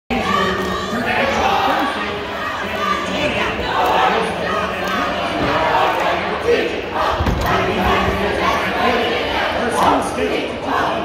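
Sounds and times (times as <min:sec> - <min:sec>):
cheerleaders shouting a cheer: 0:00.1 - 0:11.0
gym crowd noise: 0:00.1 - 0:11.0.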